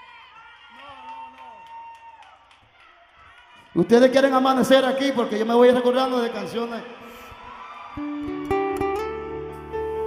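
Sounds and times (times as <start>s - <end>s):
acoustic guitar plucked notes: 8.3s - 10.0s.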